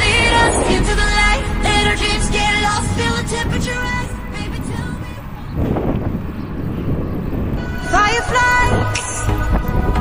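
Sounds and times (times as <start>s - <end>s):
song with sung vocal: 0.0s - 5.6s, 7.6s - 10.0s
steady low rumble: 0.0s - 7.6s.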